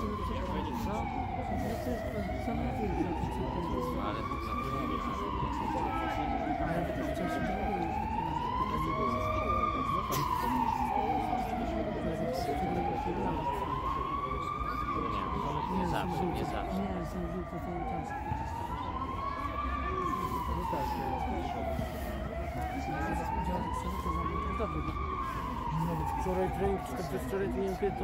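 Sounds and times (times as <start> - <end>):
siren wailing: 0.0 - 28.0.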